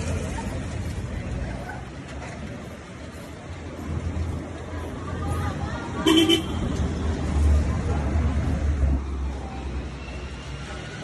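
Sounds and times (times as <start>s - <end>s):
motor vehicle rumble: 0.0s - 11.0s
vehicle horn toot: 6.0s - 6.6s.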